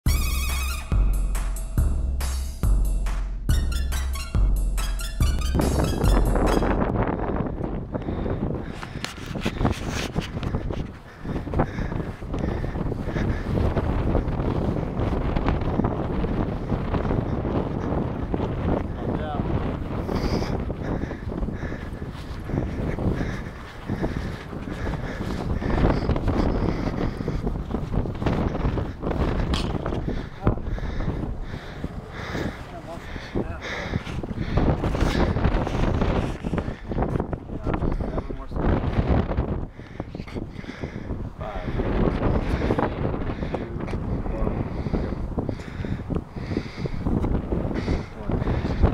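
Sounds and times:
wind buffeting microphone: 0.2s - 48.9s.

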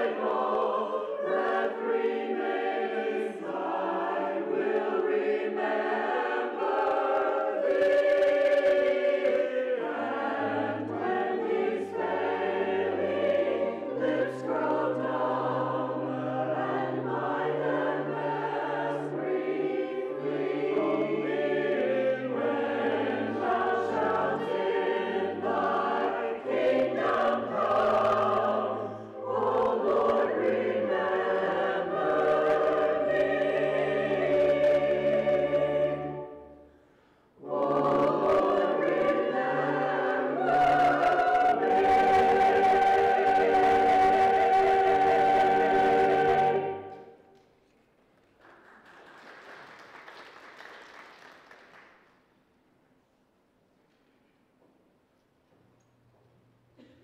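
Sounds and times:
choir singing in parts: 0.0s - 36.8s, 37.4s - 47.4s.

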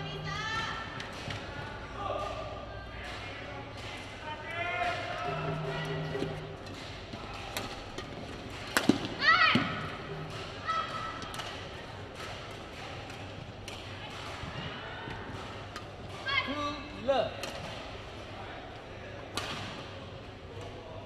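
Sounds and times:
players calling: 4.8s - 7.9s, 9.1s - 11.4s
racket hitting shuttlecock: 4.8s - 11.6s.

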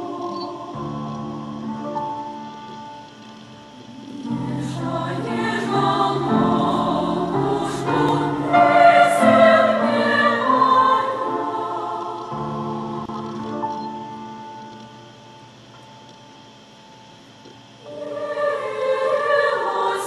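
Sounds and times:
choir singing sustained chords: 0.0s - 20.0s.

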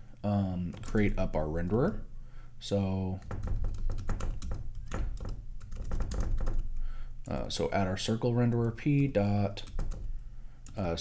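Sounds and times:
typing on computer keyboard: 0.7s - 1.2s, 3.2s - 7.4s, 8.4s - 10.9s.

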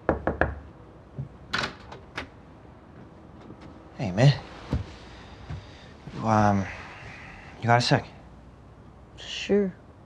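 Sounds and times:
knuckle knocks on wooden door: 0.0s - 0.6s.

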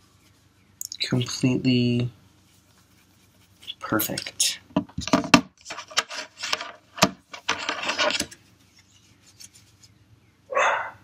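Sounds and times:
rubbing and handling phone case: 2.4s - 10.0s
dog barking: 10.5s - 11.0s.

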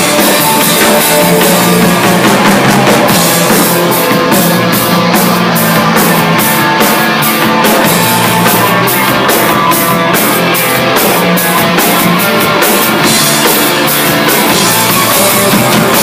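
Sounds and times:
drum kit cymbals beat: 0.0s - 16.0s
electric bass: 0.0s - 16.0s
electric guitar: 0.0s - 16.0s.

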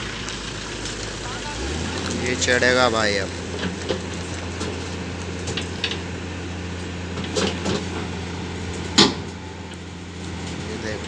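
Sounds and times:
diesel engine running: 0.0s - 11.0s
clanks and creaks of tracks: 7.2s - 9.4s
loud metal clank: 8.9s - 9.4s.

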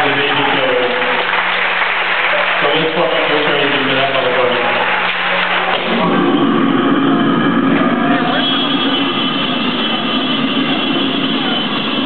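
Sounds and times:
steady high-pitched tones: 2.6s - 12.0s.

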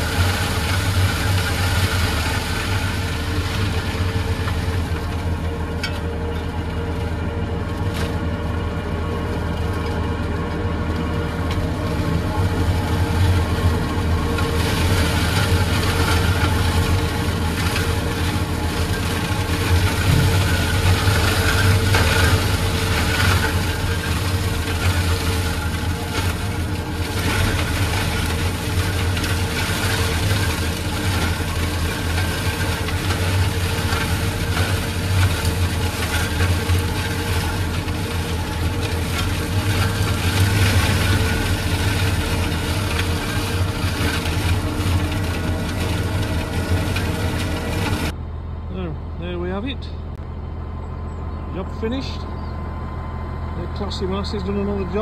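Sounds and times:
flail mower chopping grass: 0.0s - 49.9s, 51.6s - 52.4s, 53.5s - 55.0s
tractor engine running: 0.0s - 55.0s.

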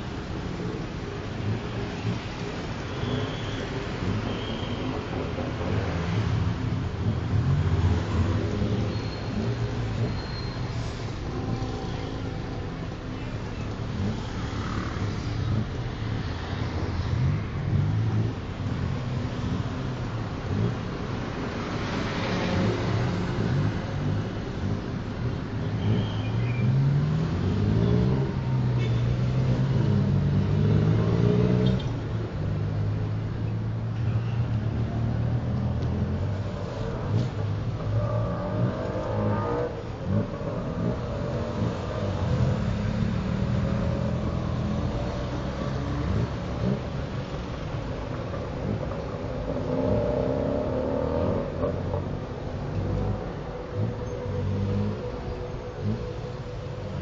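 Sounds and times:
surrounding traffic: 0.0s - 57.0s
tuk-tuk engine revving: 0.0s - 57.0s.

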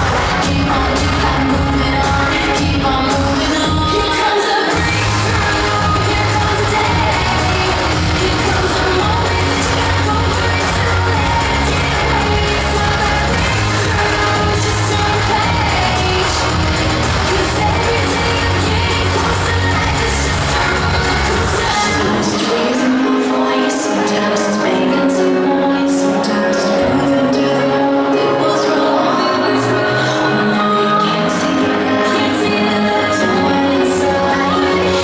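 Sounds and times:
strong bass line: 0.0s - 4.0s, 4.7s - 22.4s
live band playing pop music: 0.0s - 35.0s.

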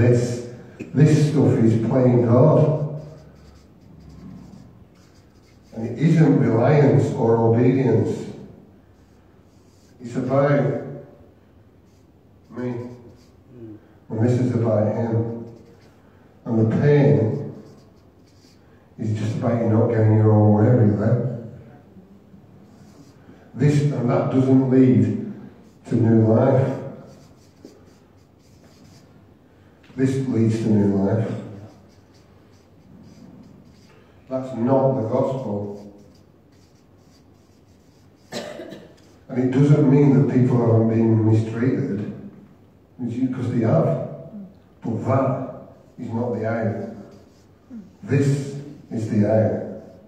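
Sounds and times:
marker pen scratching on paper: 0.1s - 11.2s, 11.8s - 13.5s, 14.1s - 19.9s, 22.6s - 29.2s, 29.9s - 39.9s, 45.0s - 50.0s.

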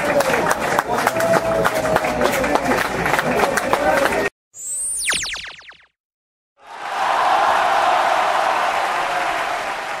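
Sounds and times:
applause-like crowd noise: 0.0s - 4.3s, 6.6s - 10.0s.

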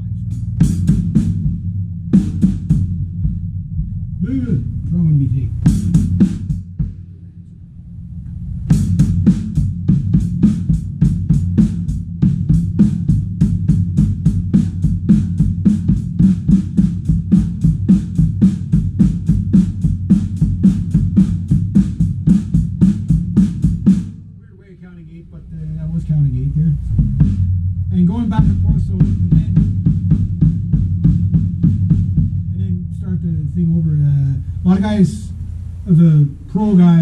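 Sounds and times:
bass drum strokes: 0.0s - 37.0s.

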